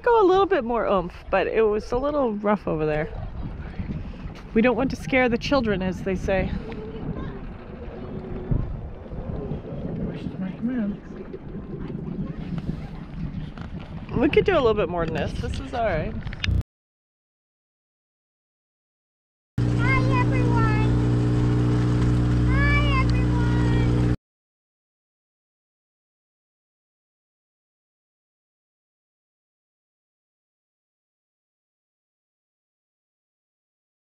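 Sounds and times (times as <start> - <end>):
wind buffeting microphone: 0.0 - 16.6
boat engine humming: 19.6 - 24.2.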